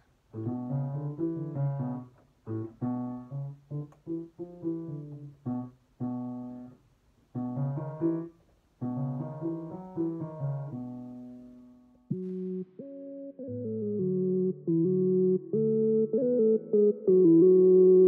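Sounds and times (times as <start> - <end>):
piano chords and notes: 0.0 - 18.0.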